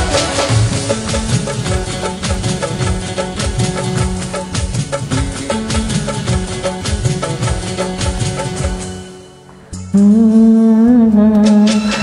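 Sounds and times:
music: 0.0 - 12.0
man humming a long note: 9.9 - 12.0.

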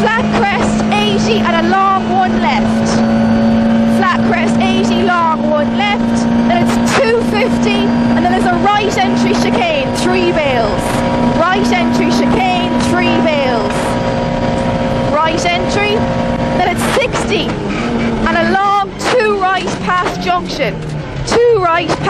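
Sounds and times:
rally car engine at high revs: 0.0 - 22.0.

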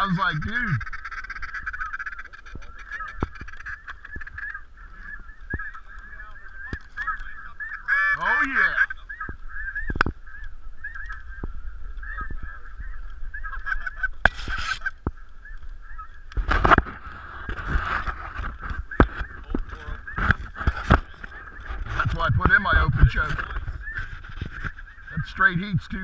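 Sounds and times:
geese yelping chorus: 0.0 - 26.0.

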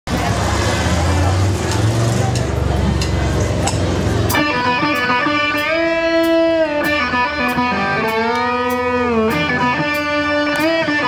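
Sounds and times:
loud low bass notes from amplifiers: 0.1 - 11.0.

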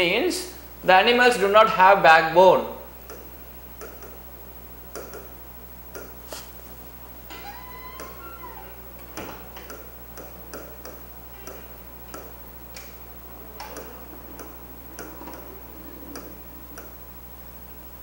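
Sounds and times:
low electrical hum: 0.0 - 18.0.

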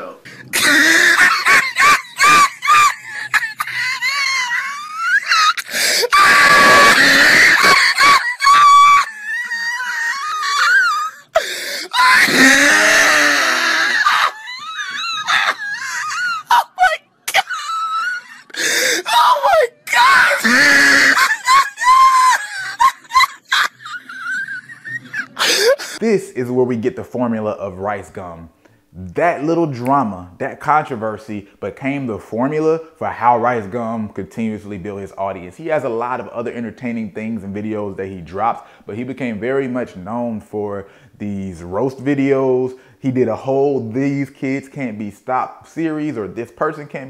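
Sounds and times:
person laughing: 0.4 - 11.2, 12.0 - 19.1, 20.0 - 26.0
person screaming and shrieking: 0.4 - 26.0.

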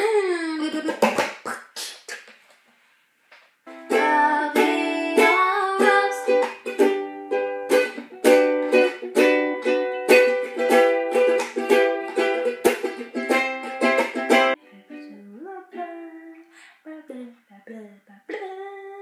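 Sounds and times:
ukulele strumming: 0.6 - 1.4, 3.7 - 16.4.

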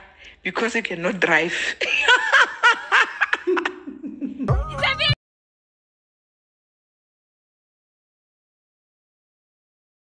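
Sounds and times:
woman laughing: 1.8 - 5.2.

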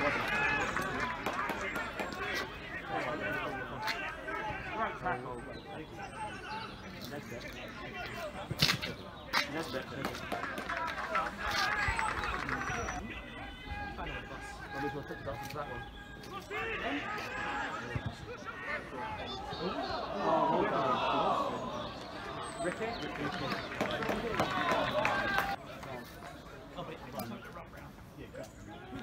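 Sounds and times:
footballers calling and shouting: 0.0 - 29.0.

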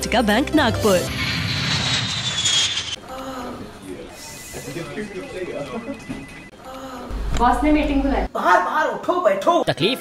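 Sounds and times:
jet airliner flying past: 0.7 - 3.0.

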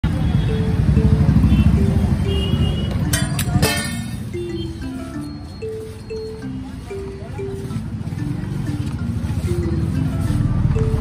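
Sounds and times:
street noise: 0.0 - 11.0
vehicle engine running: 0.0 - 11.0
background music melody: 0.1 - 11.0
sharp metallic clatters: 3.1 - 4.3.

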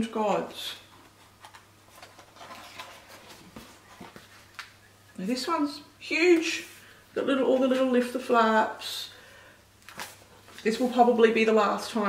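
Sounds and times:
book page turning: 1.0 - 4.8, 9.8 - 11.0.

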